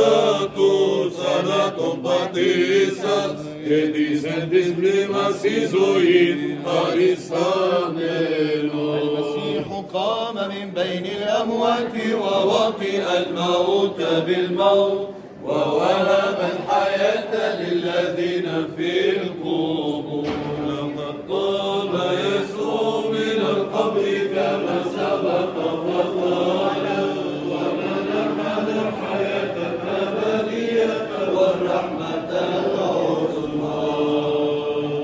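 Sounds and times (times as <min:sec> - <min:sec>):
men chanting a hymn: 0:00.0 - 0:35.0.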